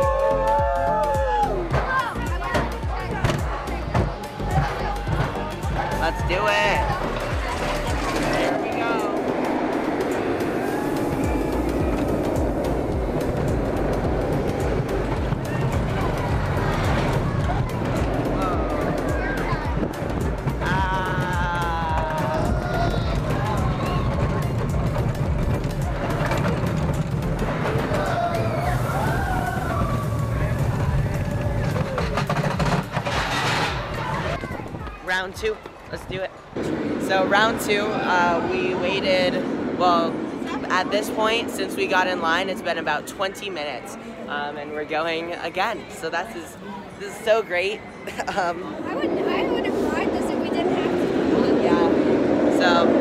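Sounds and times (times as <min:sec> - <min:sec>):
riders whooping and shouting: 0:00.0 - 0:01.7, 0:20.6 - 0:24.6, 0:27.7 - 0:32.3
background music: 0:00.0 - 0:34.7
roller coaster rumbling on track: 0:00.0 - 0:53.0.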